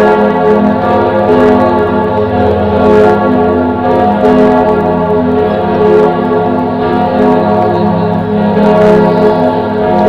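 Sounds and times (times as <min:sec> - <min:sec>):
church bells pealing: 0:00.0 - 0:10.0.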